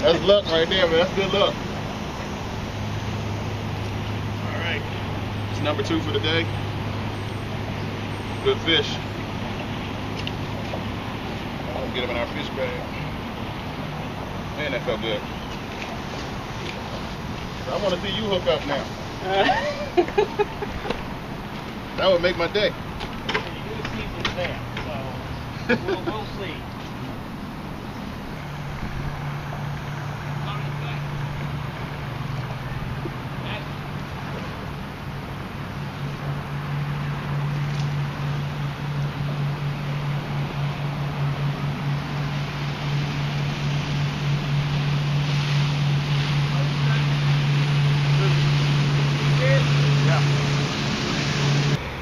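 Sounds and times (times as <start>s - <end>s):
low steady hum: 0.0s - 52.0s
rushing noise: 0.0s - 52.0s
wind buffeting microphone: 0.0s - 52.0s.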